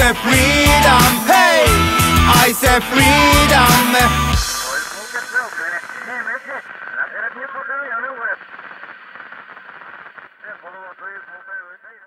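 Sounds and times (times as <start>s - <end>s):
man's voice radio-like: 0.0s - 8.5s, 10.4s - 12.0s.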